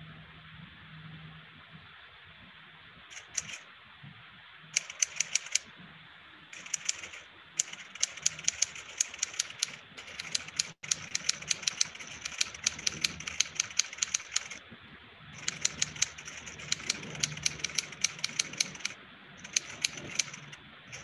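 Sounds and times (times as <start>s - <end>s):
typewriter keys clicking: 4.8s - 5.6s, 6.6s - 14.6s, 15.4s - 21.0s.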